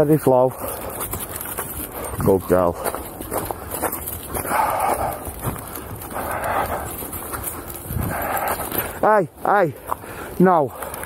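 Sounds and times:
footsteps on muddy path: 0.0s - 11.0s
dog huffing: 4.0s - 9.0s.

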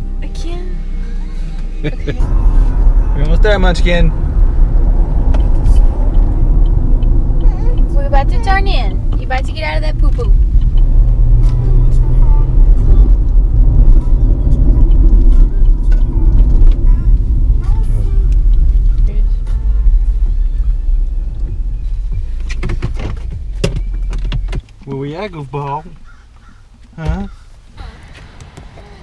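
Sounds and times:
car engine and road rumble: 0.0s - 29.0s.

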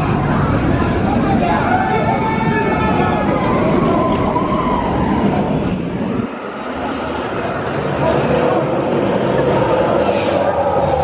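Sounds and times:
roller coaster rumbling on track: 0.0s - 11.0s.

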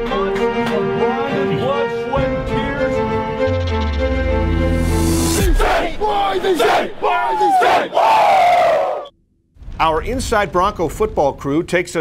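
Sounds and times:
players shouting a chant: 5.4s - 9.1s.

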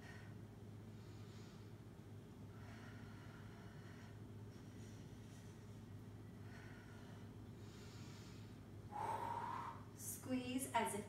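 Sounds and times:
woman breathing hard: 0.0s - 10.0s.

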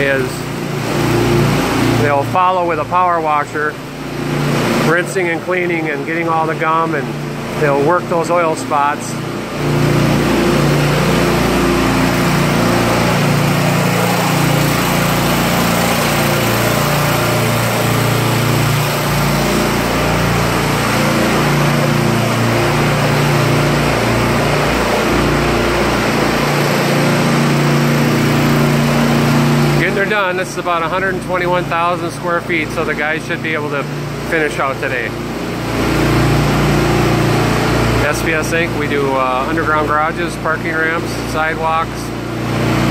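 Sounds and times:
small gasoline engine running: 0.0s - 42.9s.

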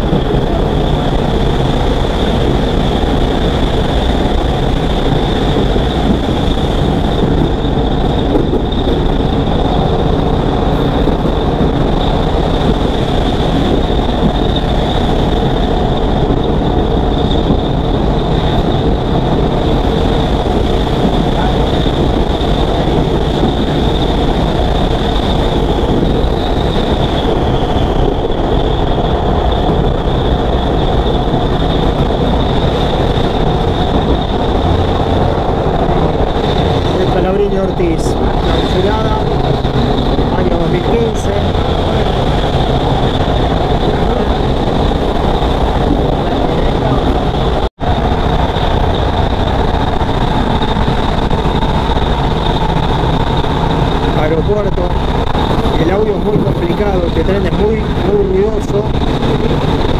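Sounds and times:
high-pitched whine: 0.0s - 59.9s
rush of passing air: 0.0s - 59.9s
train wheels rumbling on rails: 0.0s - 59.9s.

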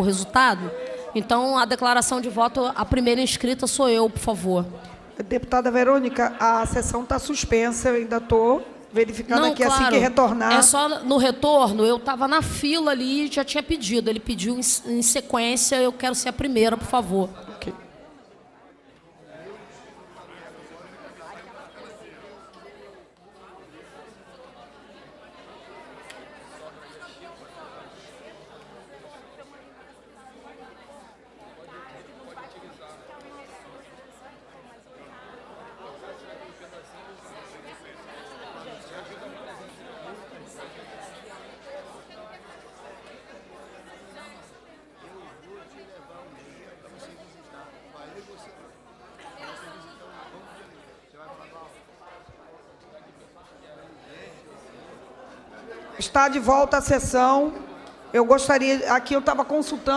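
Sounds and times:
murmur of overlapping conversations: 0.0s - 59.9s.

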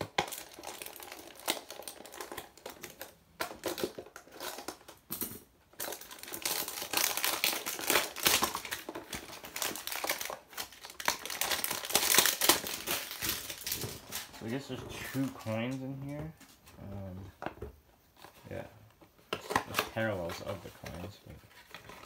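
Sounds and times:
plastic packaging crinkling: 0.0s - 5.1s, 5.7s - 16.2s.

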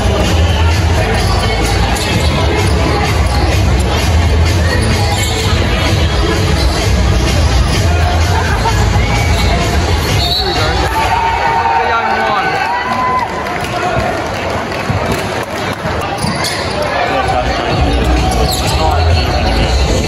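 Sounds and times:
arena music with bass beat: 0.0s - 11.4s, 17.7s - 20.0s
voices echoing in a hall: 0.0s - 20.0s.

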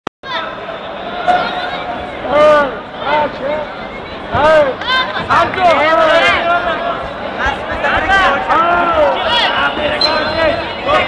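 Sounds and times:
steady background noise: 0.2s - 11.0s.

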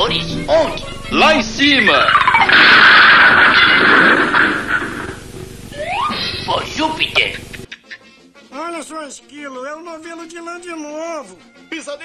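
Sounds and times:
cartoon rushing noise: 5.8s - 6.6s.

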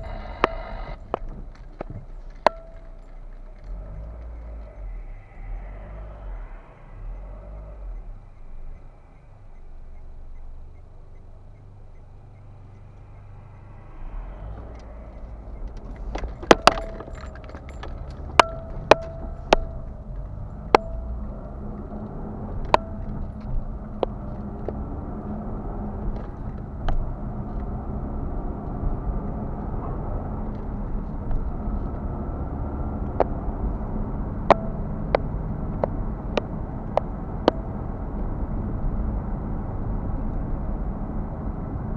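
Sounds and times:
car idling: 0.0s - 41.9s
road and engine rumble: 0.0s - 41.9s
metallic clinks and jingles: 15.8s - 21.1s.

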